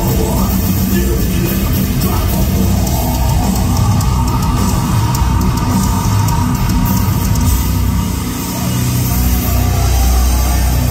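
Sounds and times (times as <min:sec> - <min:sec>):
heavy metal band playing live: 0:00.0 - 0:10.9.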